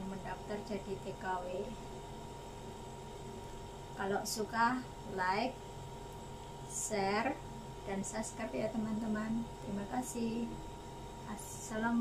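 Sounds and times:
low steady hum and hiss: 0.0s - 12.0s.

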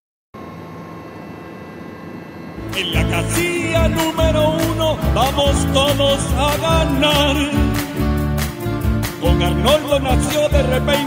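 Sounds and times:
thin steady whine: 0.4s - 2.8s
aircraft engine drone: 0.4s - 6.2s.

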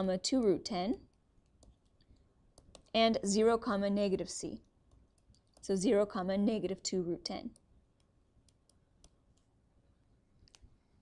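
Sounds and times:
stylus tapping on tablet screen: 1.1s - 3.0s, 7.5s - 9.5s.

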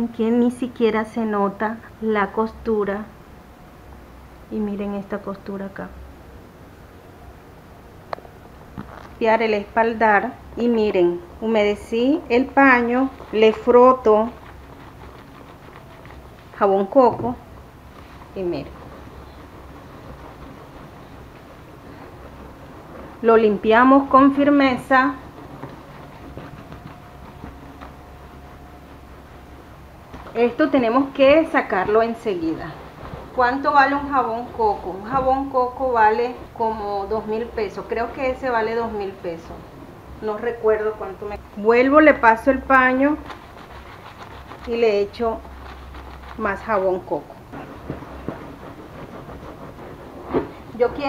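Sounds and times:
cloth rubbing faux-leather: 8.6s - 9.3s, 12.0s - 38.7s, 41.2s - 51.0s.

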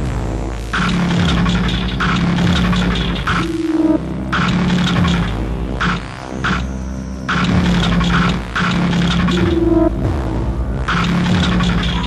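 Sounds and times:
heavy low drone: 0.0s - 12.0s.

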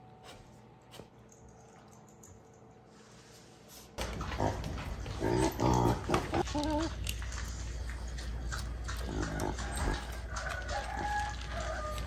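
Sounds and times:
pig grunting and eating: 4.0s - 12.0s.

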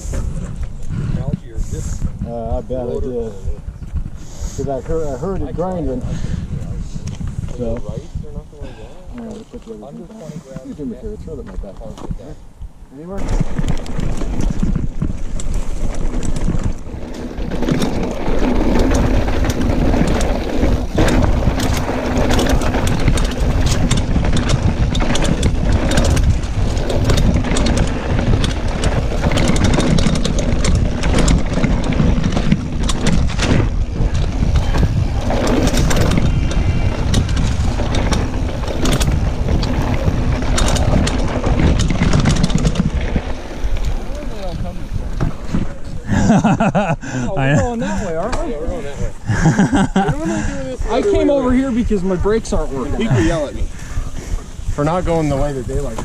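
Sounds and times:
bike rattling over bumps: 0.0s - 56.0s
bike tyre rumble on dirt: 0.0s - 56.0s
wind noise on microphone: 0.0s - 56.0s.

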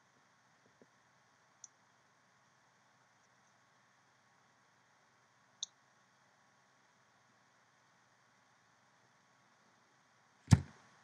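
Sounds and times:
faint steady hiss: 0.0s - 11.0s
short thump: 10.5s - 10.7s.

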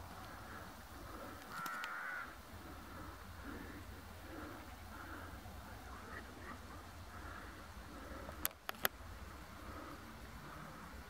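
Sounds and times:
bird harsh call: 1.5s - 2.4s.

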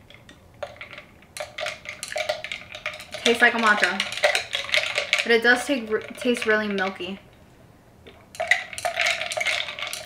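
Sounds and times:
ice and metal straw clinking glass: 8.4s - 10.0s.

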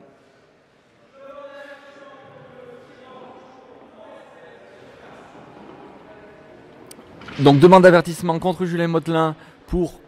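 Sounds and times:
distant voices in a hall: 0.0s - 10.0s.

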